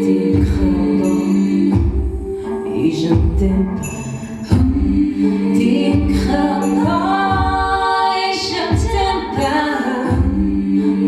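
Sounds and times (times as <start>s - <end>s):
low pulsing beat: 0.0s - 3.9s, 4.5s - 10.8s
wordless choir singing: 0.0s - 11.0s.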